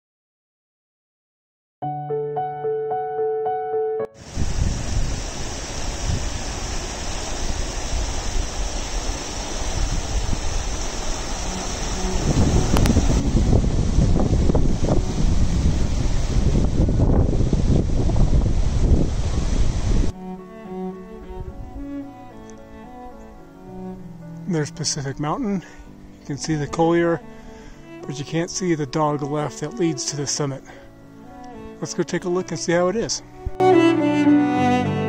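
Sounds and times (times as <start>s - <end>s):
piano notes: 1.8s - 4.3s, 11.1s - 15.9s, 20.1s - 35.0s
wind buffeting microphone: 4.2s - 20.2s, 21.2s - 22.0s
bowed strings: 10.5s - 15.9s, 20.0s - 35.0s.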